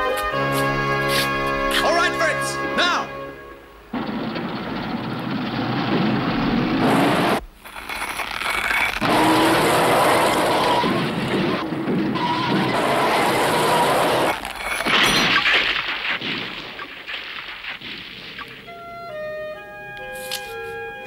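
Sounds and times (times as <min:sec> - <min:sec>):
background music: 0:00.0 - 0:03.9, 0:18.6 - 0:21.0
cartoon car engine straining: 0:03.9 - 0:15.5
tyre spinning in dirt: 0:05.4 - 0:18.6.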